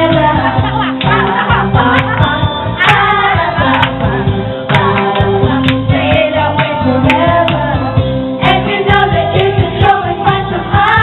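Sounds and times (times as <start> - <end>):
backing track with steady beat: 0.0 - 11.0
group of women singing along: 0.0 - 11.0
woman singing into microphone: 0.0 - 11.0.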